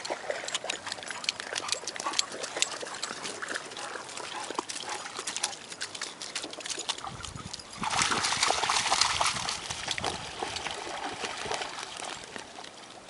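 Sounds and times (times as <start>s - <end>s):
dog sounds: 0.0s - 7.7s
dogs splashing in water: 0.0s - 13.0s
sharp clicks of water: 0.0s - 13.0s.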